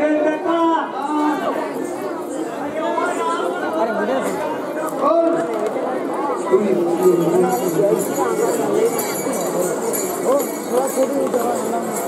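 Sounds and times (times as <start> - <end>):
man talking into a microphone: 6.5 - 12.0.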